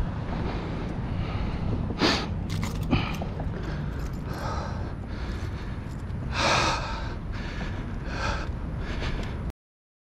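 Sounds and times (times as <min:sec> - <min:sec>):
heavy breaths: 0:00.0 - 0:09.5
wind buffeting microphone: 0:00.0 - 0:09.5.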